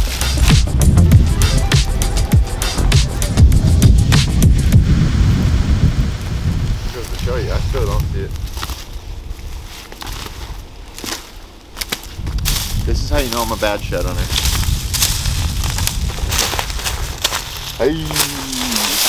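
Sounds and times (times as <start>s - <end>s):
footsteps crunching through leaves: 0.0s - 3.1s, 6.1s - 19.0s
bass-heavy background music: 0.0s - 6.2s.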